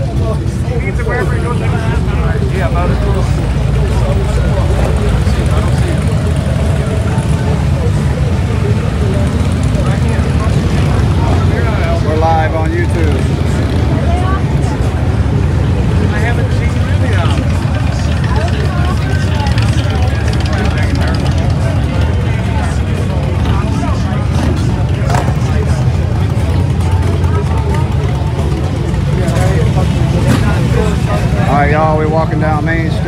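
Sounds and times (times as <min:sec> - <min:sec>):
motorcycle engines rumbling: 0:00.0 - 0:33.0
people talking: 0:00.0 - 0:33.0.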